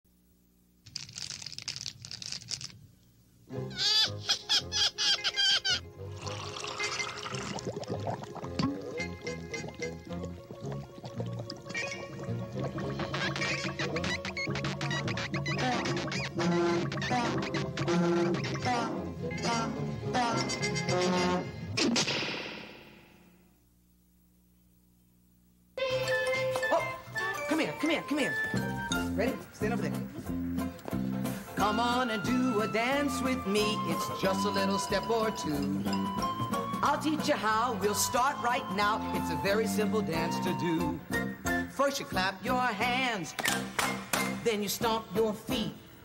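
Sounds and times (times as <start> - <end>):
faint steady hum: 0.1 - 17.0, 22.7 - 25.9
cartoon soundtrack: 3.6 - 5.9, 11.6 - 22.0
cartoon music: 3.6 - 21.5, 31.6 - 41.6
liquid pouring: 6.1 - 12.9
bubbling liquid: 6.1 - 14.6.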